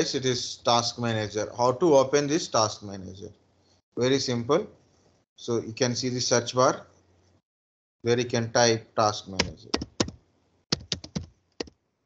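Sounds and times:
computer keyboard typing: 0:09.4 - 0:11.8.

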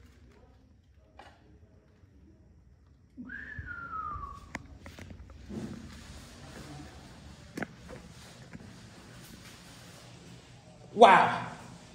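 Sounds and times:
person whistling falling note: 0:03.2 - 0:04.5.

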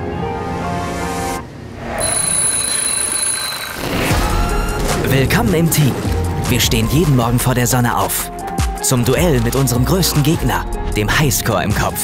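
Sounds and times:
music: 0:00.0 - 0:01.5, 0:04.0 - 0:12.0
alarm clock ringing: 0:02.0 - 0:04.1.

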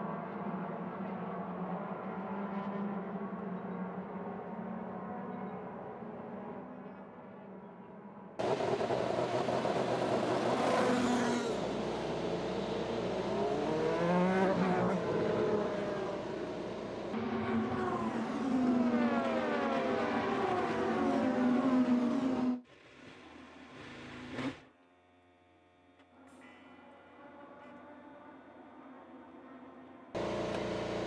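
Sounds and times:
race car engines passing: 0:08.4 - 0:22.6, 0:30.2 - 0:31.0.

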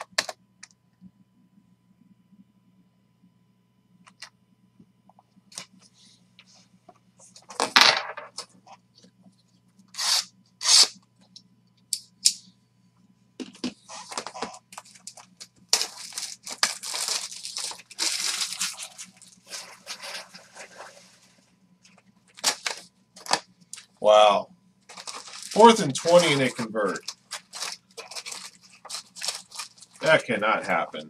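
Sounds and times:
plastic crinkling and rustling: 0:13.7 - 0:23.9, 0:24.9 - 0:30.8
plastic wrap ripping: 0:13.9 - 0:20.4, 0:22.3 - 0:23.4, 0:24.9 - 0:30.2.

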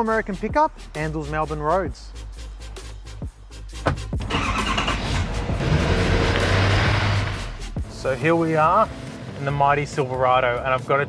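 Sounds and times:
background music: 0:00.0 - 0:11.0
truck engine starting and revving: 0:03.9 - 0:10.1.

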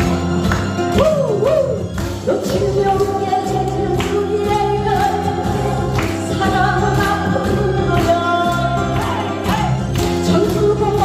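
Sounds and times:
acoustic guitar: 0:00.0 - 0:11.0
amplified backing music: 0:00.0 - 0:11.0
woman singing into microphone: 0:02.2 - 0:11.0.

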